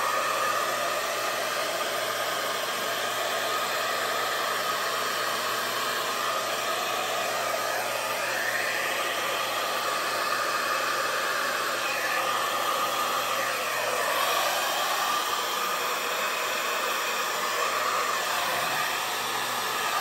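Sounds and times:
hair dryer blowing: 0.0 - 20.0.

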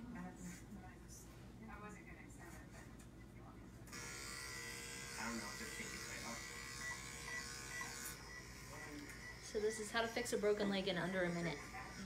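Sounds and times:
steady electric buzz: 3.9 - 12.0.

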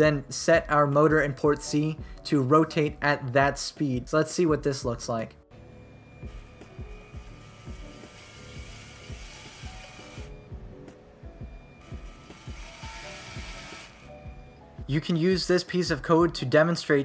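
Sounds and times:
background music: 0.0 - 17.0
toy motor whirring through gears: 6.3 - 10.4, 11.8 - 14.2.

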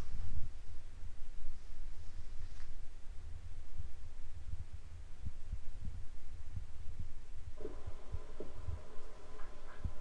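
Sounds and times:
low rumble: 3.2 - 10.0
reggae music from television: 7.6 - 10.0.

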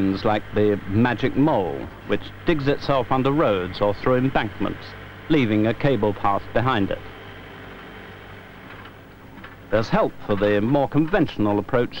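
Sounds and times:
low mechanical hum with hiss: 0.0 - 12.0.

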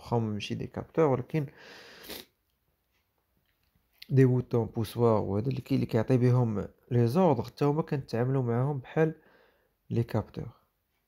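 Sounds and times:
man speaking: 0.0 - 1.6, 4.0 - 9.2, 9.9 - 10.6.

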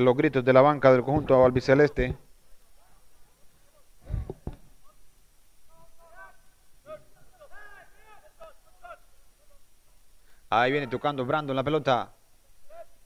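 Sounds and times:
players shouting: 4.8 - 9.7, 10.6 - 11.3.

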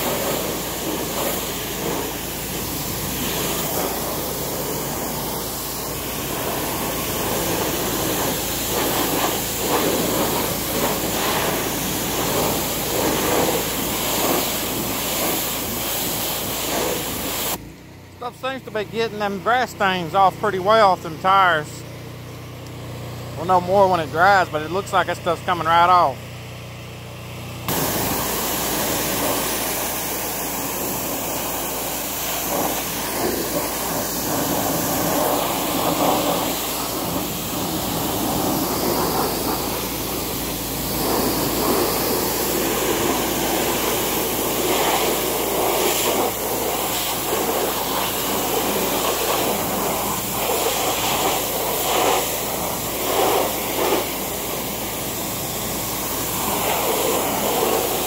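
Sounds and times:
pressure washer spraying: 0.0 - 17.6, 27.6 - 58.0.

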